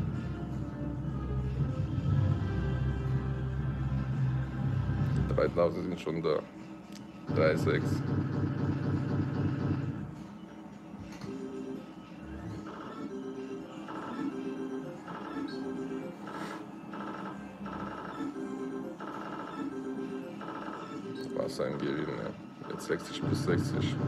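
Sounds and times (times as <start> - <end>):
slot machine electronic beeping music: 11.4 - 24.0.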